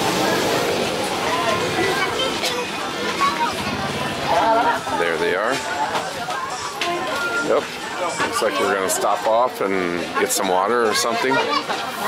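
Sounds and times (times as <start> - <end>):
people talking: 0.0 - 12.0
street noise: 0.0 - 12.0.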